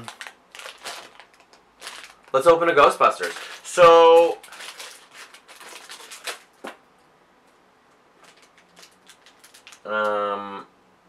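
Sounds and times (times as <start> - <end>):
packaging crinkling and tearing: 0.0 - 6.8, 8.2 - 9.9
packaging rustling: 0.0 - 6.8, 8.2 - 9.9.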